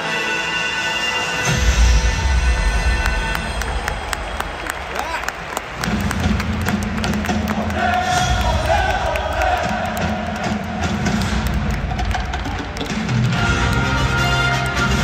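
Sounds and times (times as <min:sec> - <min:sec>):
stadium music over loudspeakers: 0:00.0 - 0:15.0.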